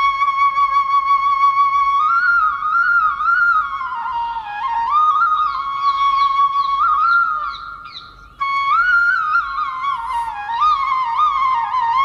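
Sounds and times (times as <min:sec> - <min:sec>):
wavering flute-like melody: 0:00.0 - 0:12.0.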